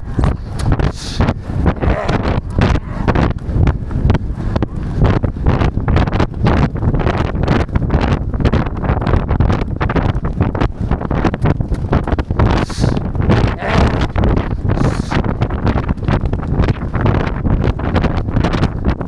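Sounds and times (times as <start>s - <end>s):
horse hoofbeats: 0.0s - 18.8s
wind buffeting microphone: 0.0s - 19.0s.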